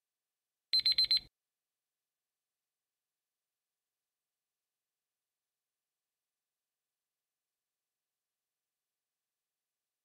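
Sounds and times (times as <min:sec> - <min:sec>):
high-pitched alarm beeps: 0:00.8 - 0:01.2.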